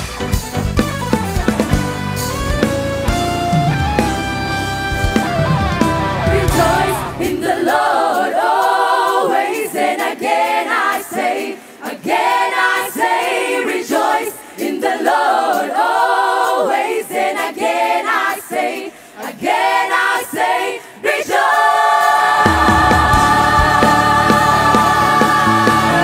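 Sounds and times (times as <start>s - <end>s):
choir singing a cappella: 5.8s - 26.0s.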